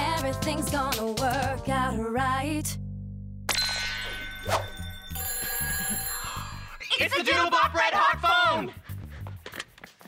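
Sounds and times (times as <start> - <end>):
telephone ringing: 4.7 - 6.8.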